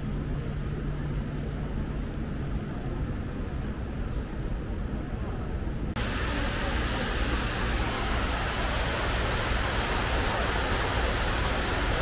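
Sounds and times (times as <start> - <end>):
water pouring down walls: 6.0 - 12.0.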